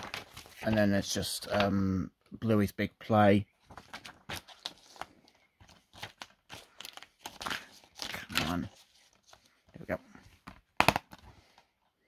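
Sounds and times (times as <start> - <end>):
paper leaflet rustling: 0.0 - 1.8, 3.6 - 10.6.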